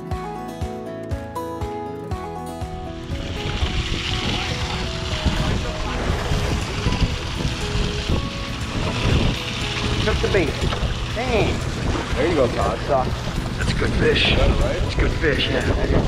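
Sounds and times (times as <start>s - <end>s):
faint background music: 2.2s - 16.0s
sea noise: 2.6s - 16.0s
wind: 2.6s - 16.0s.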